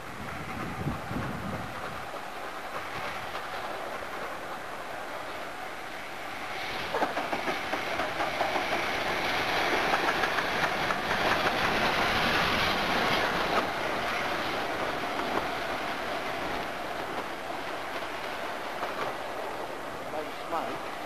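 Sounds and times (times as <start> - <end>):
train wheels clicking over rail joints: 0.2 - 5.5, 6.2 - 20.1.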